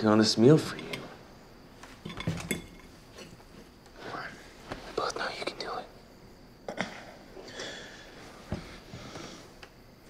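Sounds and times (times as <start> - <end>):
man whispering: 4.0 - 6.0.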